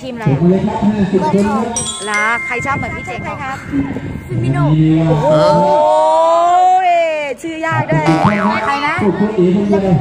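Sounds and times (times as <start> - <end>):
cartoon boing sound effect: 8.0 - 8.8.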